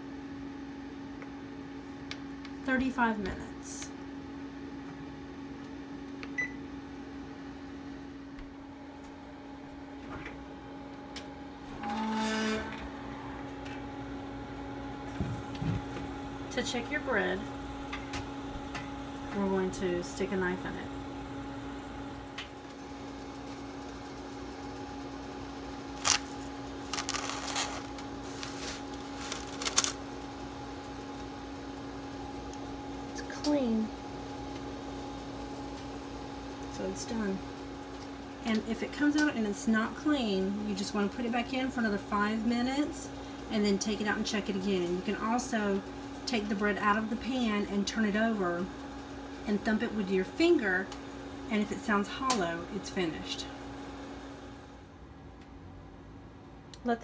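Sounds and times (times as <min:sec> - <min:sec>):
electric oven humming: 0:00.0 - 0:57.0
parchment paper crinkling: 0:26.0 - 0:30.2.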